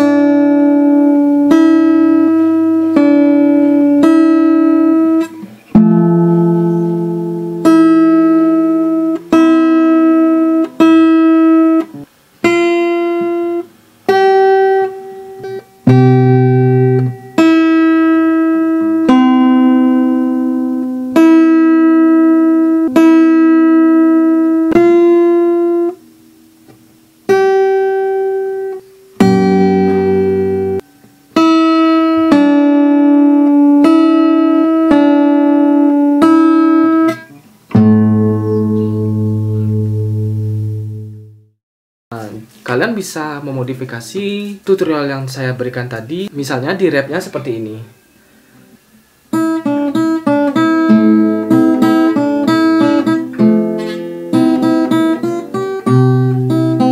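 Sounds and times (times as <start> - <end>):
fingerstyle acoustic guitar: 0.0 - 41.4, 48.2 - 56.9.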